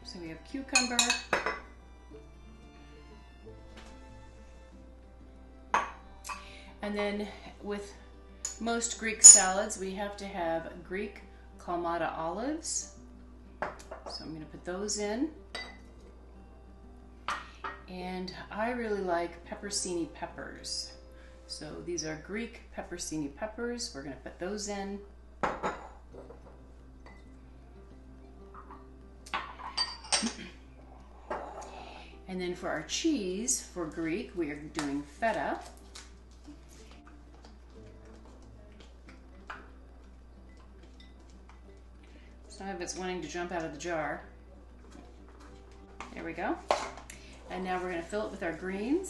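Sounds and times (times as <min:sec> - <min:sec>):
soft background music: 0:00.0 - 0:49.0
glassware clinking: 0:00.8 - 0:01.7, 0:05.7 - 0:06.4, 0:09.2 - 0:09.6, 0:15.5 - 0:15.8, 0:25.4 - 0:26.4, 0:28.6 - 0:30.5, 0:31.3 - 0:31.7.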